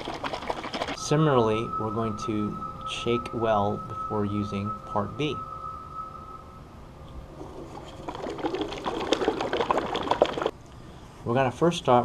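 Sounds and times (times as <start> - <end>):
liquid sloshing in plastic bottle: 0.0 - 1.0, 7.6 - 10.5.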